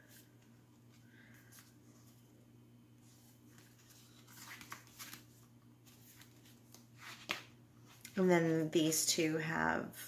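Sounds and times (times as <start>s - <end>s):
paper pages rustling: 0.1s - 2.3s, 3.0s - 8.7s.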